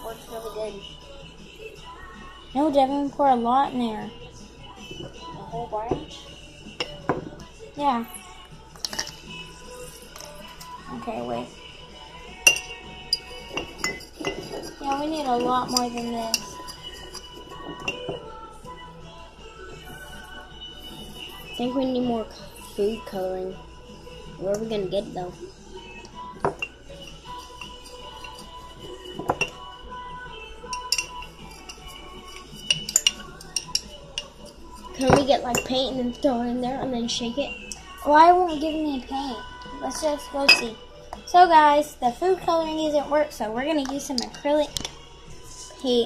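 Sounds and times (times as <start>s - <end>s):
faint background music: 0.0s - 46.0s
glass jars clinking: 8.8s - 9.2s, 12.4s - 18.3s, 26.4s - 29.7s, 30.7s - 35.8s, 40.4s - 40.8s.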